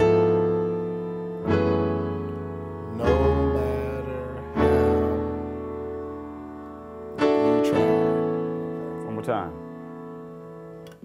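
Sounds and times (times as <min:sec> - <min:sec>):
gospel chords on piano keyboard: 0:00.0 - 0:11.0.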